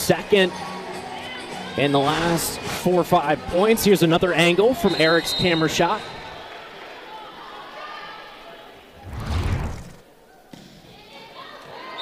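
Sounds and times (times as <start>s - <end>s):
faint arena background noise: 0.0s - 12.0s.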